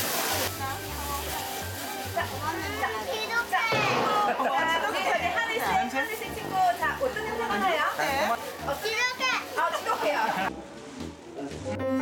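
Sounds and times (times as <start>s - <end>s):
background music: 0.5s - 12.0s
children talking: 2.5s - 6.6s, 8.7s - 10.2s.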